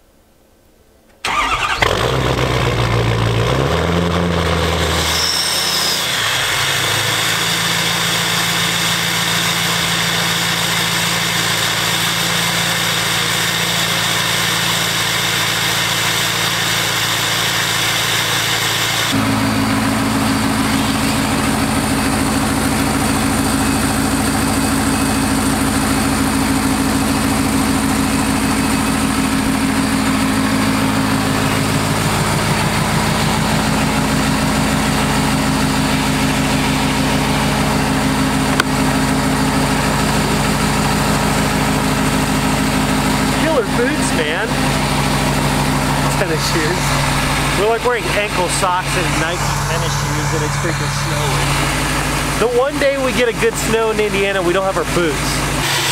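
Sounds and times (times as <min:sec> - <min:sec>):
pickup truck engine idling: 0:05.9 - 0:55.8.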